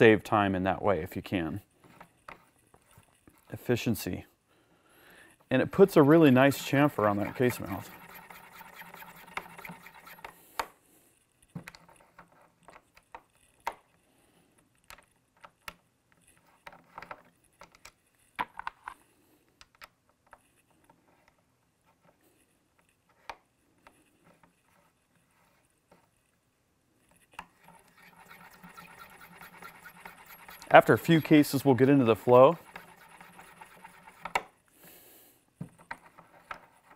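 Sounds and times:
hand-cranked cutter scraping: 5.5 - 10.4, 27.4 - 34.5.

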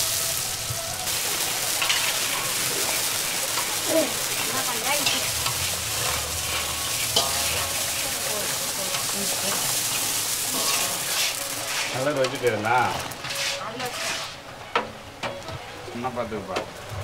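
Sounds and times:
dough balls sizzling in hot oil: 0.0 - 15.0
metal skimmer scraping pan: 1.8 - 14.4.

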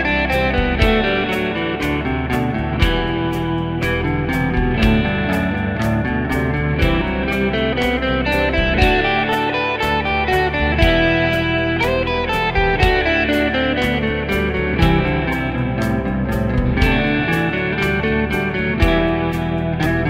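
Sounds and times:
backing track drum beat: 0.0 - 20.0
electric guitar scale runs: 0.0 - 20.0.

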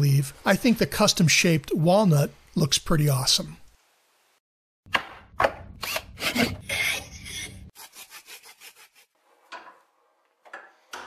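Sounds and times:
saw rasping on wood: 5.8 - 9.1.

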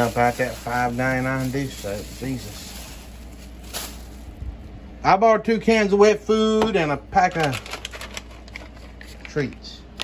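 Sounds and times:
plastic bag rustling: 0.0 - 4.7, 7.2 - 9.4.

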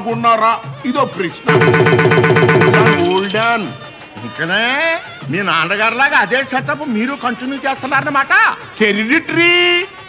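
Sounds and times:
electronic ringtone trilling: 1.5 - 4.2.

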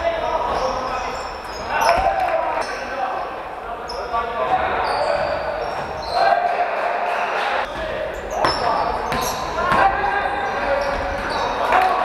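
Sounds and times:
sneakers squeaking: 0.0 - 12.0.

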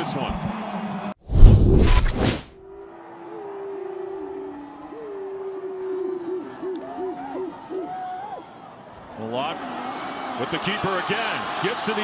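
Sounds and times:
whoosh transition effect: 1.3 - 2.5.

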